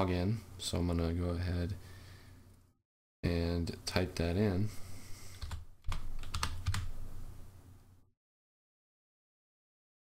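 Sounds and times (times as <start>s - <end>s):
keyboard keystrokes: 5.4s - 6.9s.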